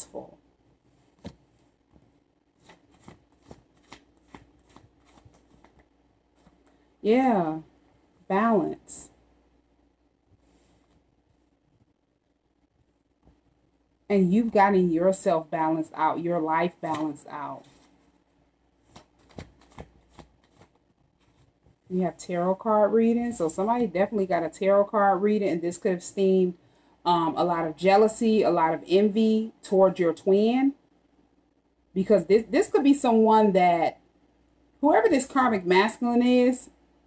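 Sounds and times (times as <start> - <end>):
cards being shuffled: 1.1 - 6.8, 16.8 - 18.2, 18.8 - 21.7.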